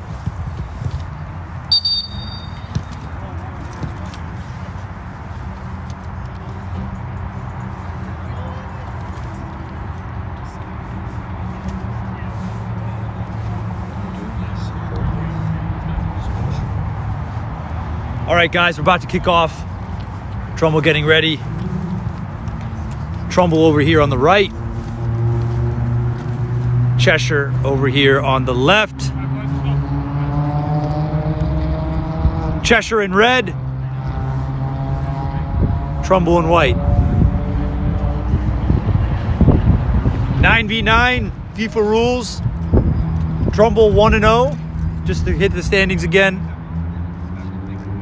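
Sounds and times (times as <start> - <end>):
distant players' voices: 0.0 - 48.0
brief high whistle: 1.7 - 2.8.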